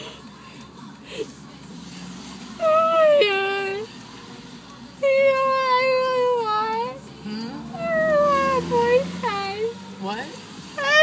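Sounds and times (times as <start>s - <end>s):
woman wailing and sobbing: 2.6s - 3.9s, 7.8s - 9.1s.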